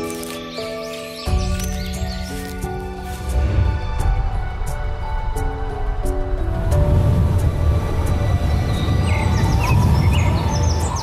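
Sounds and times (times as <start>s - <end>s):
birds chirping: 0.0s - 3.2s, 8.2s - 11.0s
background music: 0.0s - 11.0s
low rushing wind-like noise: 3.3s - 11.0s.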